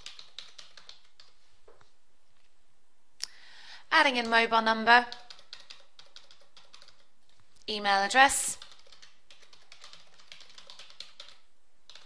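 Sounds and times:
computer keyboard clicks: 0.0 - 1.4, 5.1 - 7.1, 8.6 - 12.0.

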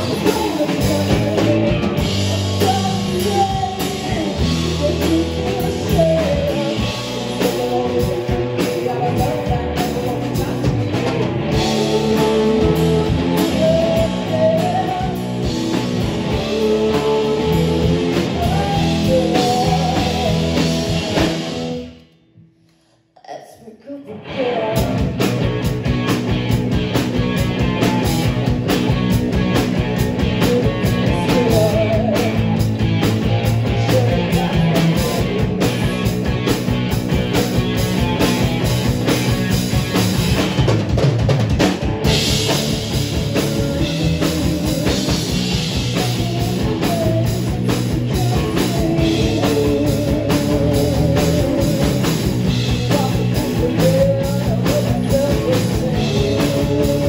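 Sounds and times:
live rock band playing: 0.0 - 22.1, 24.2 - 57.0.

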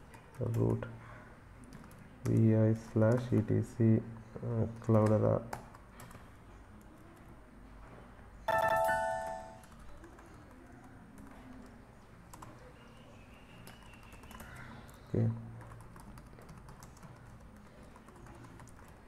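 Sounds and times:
typing on computer keyboard: 1.6 - 2.5, 4.8 - 7.2, 13.6 - 19.0.

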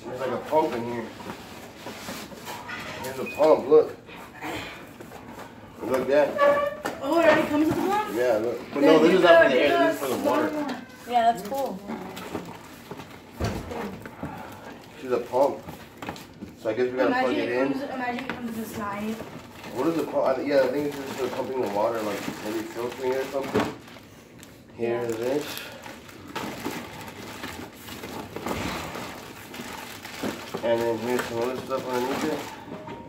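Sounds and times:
rummaging in cardboard box: 0.1 - 3.4, 18.4 - 24.1, 24.8 - 33.0
box rustling and knocking: 6.8 - 8.4
plastic bag crinkling: 7.2 - 16.5, 18.8 - 32.8.

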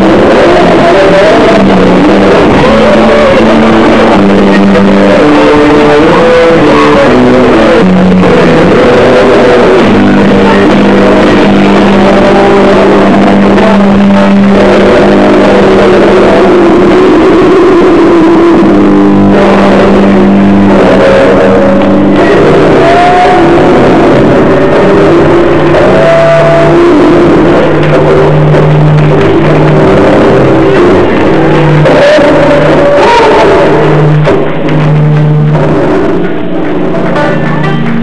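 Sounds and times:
bass guitar notes: 0.0 - 38.0
noise rock band playing live: 0.0 - 38.0.

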